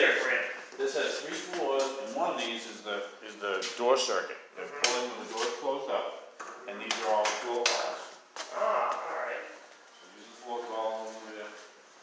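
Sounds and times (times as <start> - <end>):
indistinct voices: 8.4 - 10.6.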